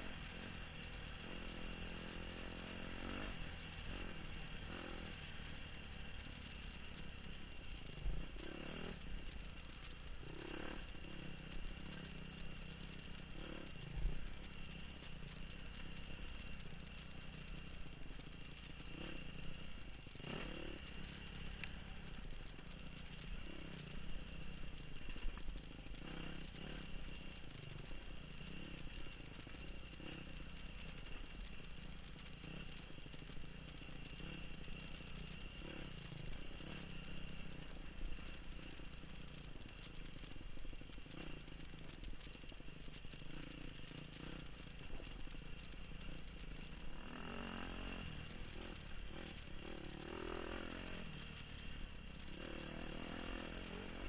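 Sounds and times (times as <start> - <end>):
dirt bike engine running: 0.0 - 54.0.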